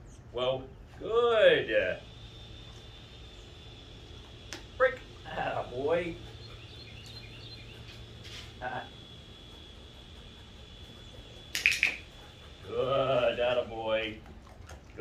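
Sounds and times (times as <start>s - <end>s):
faint high whine: 0.0s - 15.0s
steady low hum: 0.0s - 15.0s
man making wordless sounds: 12.7s - 14.2s.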